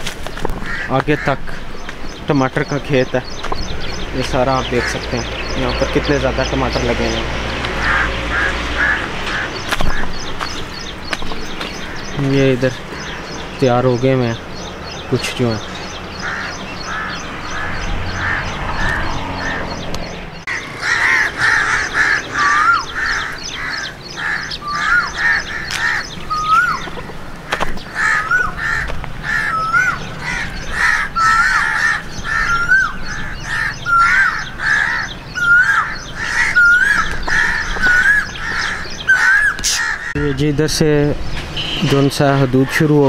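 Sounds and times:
crows cawing: 0.3 - 2.1, 3.2 - 13.7, 14.3 - 40.7.

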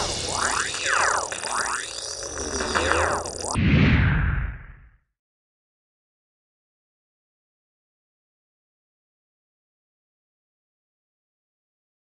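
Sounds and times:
synthesised gliding tone sweeps: 0.0 - 3.6.

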